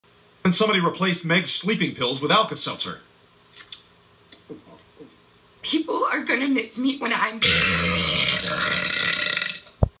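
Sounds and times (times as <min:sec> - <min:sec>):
girl's cartoon burp: 0:07.4 - 0:09.7.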